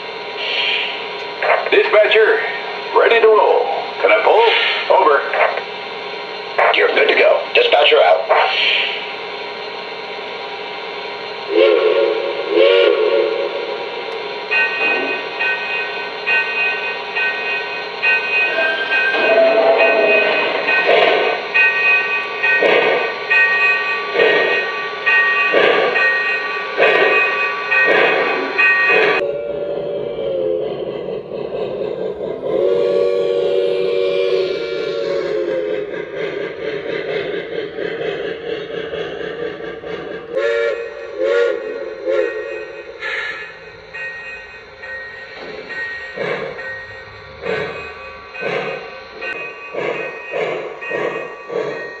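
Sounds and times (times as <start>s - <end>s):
steam chuffs: 0.0s - 52.0s
model train steam whistle: 11.5s - 13.8s, 18.4s - 20.6s, 24.2s - 30.8s, 32.2s - 35.9s, 40.4s - 43.3s
bell ringing: 14.5s - 29.2s, 42.3s - 52.0s.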